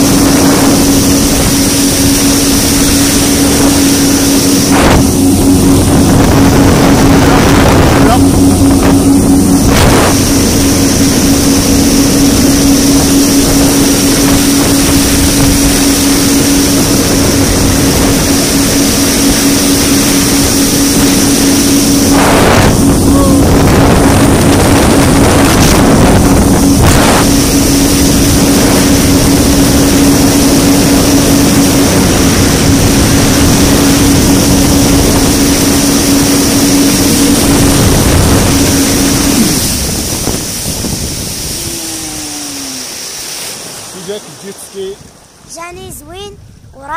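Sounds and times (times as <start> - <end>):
jet ski engine droning: 0.0 - 46.9
rush of spray and wind: 0.0 - 46.9.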